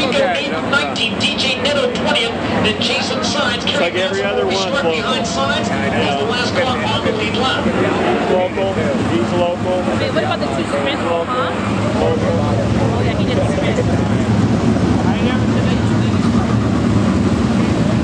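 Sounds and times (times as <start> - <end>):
people talking: 0.0 - 18.0
race car engines racing past: 0.0 - 18.0.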